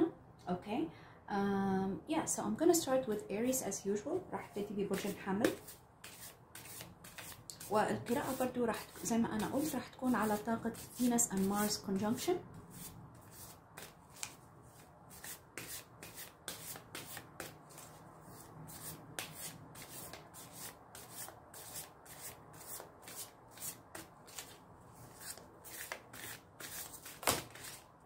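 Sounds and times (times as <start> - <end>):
cards shuffling in soft swishes: 13.2 - 20.2, 23.0 - 27.9.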